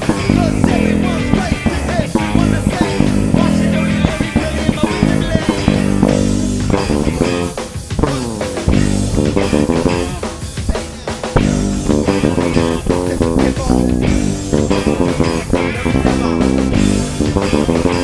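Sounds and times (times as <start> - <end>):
drums: 0.0 - 18.0
electric bass playing funk-rock line: 0.0 - 18.0
guitar: 0.0 - 18.0.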